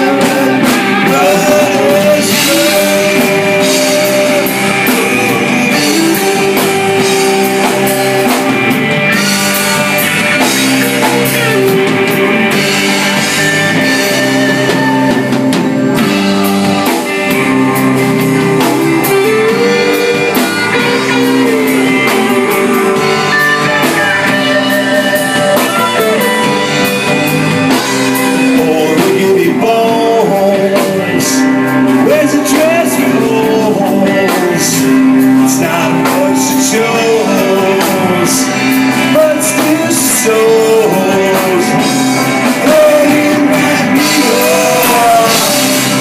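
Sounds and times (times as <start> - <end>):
man singing: 0.0 - 46.0
rock band playing: 0.0 - 46.0.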